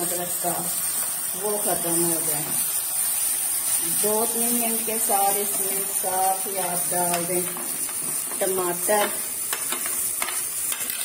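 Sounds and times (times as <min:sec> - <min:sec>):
vegetables sizzling in hot oil: 0:00.0 - 0:11.0
spoon clicking and scraping wok: 0:07.0 - 0:11.0.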